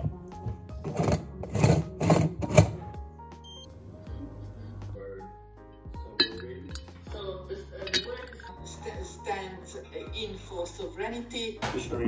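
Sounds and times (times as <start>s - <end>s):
background music: 0.0s - 12.0s
hob touch control beep: 3.4s - 3.7s.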